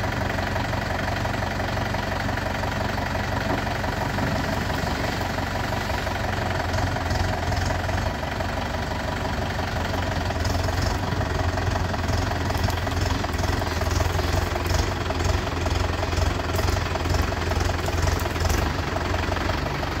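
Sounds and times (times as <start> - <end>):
diesel tractor engine running: 0.0 - 20.0.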